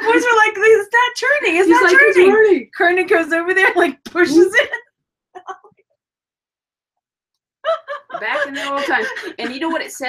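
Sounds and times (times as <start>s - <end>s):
woman laughing: 1.6s - 2.6s, 5.4s - 5.7s, 7.7s - 10.0s.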